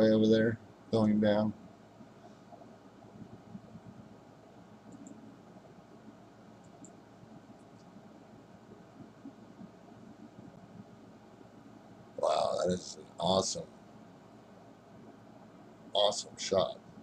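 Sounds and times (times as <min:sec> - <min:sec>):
microphone hiss: 0:00.0 - 0:17.0
small clicks: 0:04.9 - 0:05.2, 0:06.6 - 0:07.0.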